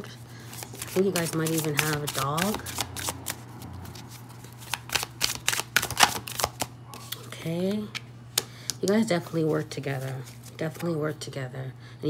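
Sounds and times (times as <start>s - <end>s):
cards being shuffled: 0.0s - 7.3s, 7.9s - 10.9s.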